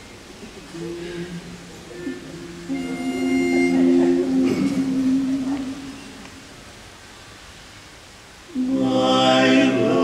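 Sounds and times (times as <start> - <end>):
singers humming held notes: 0.5 - 6.8, 8.5 - 10.0
pitch pipe tone: 1.9 - 6.2.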